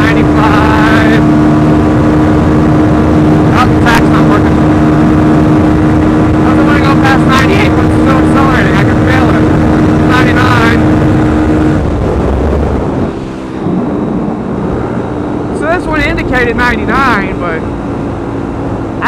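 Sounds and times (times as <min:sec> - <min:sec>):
motorcycle engine at high revs: 0:00.0 - 0:19.0
wind rush: 0:00.0 - 0:19.0.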